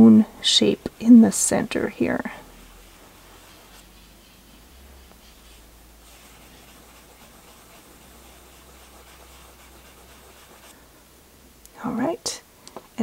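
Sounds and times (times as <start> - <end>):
pastel scratching on paper: 2.6 - 10.8.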